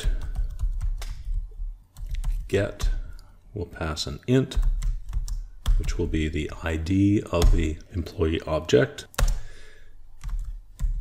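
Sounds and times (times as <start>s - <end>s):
computer keyboard keystrokes: 0.0s - 3.0s, 4.6s - 6.0s, 10.2s - 11.0s.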